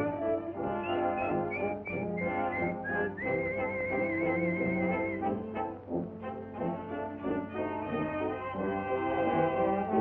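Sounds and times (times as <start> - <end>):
whistled melody with vibrato: 0.0 - 5.5
orchestral cartoon music: 0.0 - 10.0.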